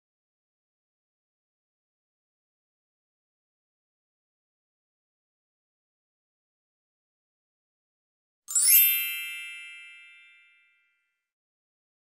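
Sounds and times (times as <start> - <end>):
bright bell-like chime: 8.5 - 11.3.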